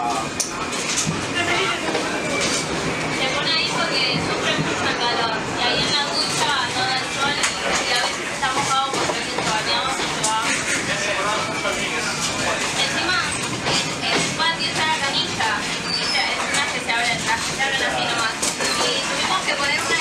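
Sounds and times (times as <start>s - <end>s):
indistinct voices talking: 0.0s - 20.0s
train rumbling along track: 0.0s - 20.0s.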